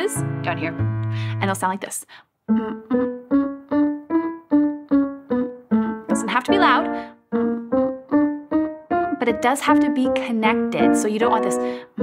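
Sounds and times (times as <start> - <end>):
woman humming short notes: 2.5 - 3.2
digital piano staccato scale: 2.5 - 12.0.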